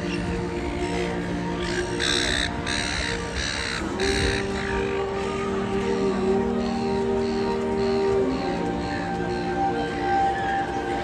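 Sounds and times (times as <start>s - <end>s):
background music: 0.0s - 11.0s
bird cawing: 1.6s - 5.2s.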